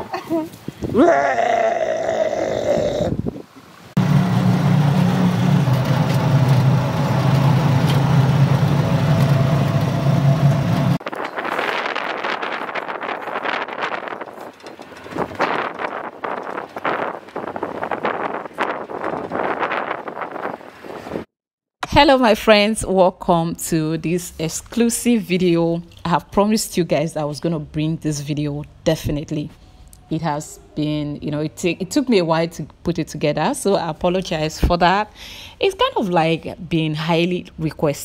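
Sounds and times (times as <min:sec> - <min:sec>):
wind buffeting microphone: 0:00.6 - 0:01.0, 0:02.7 - 0:03.5, 0:11.0 - 0:21.3
vehicle engine humming: 0:03.4 - 0:11.3.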